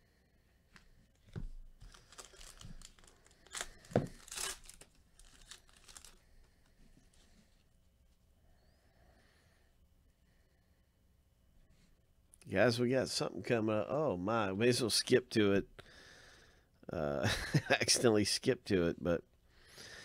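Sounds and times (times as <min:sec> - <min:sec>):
foil wrapper tearing and crinkling: 0:01.8 - 0:06.2.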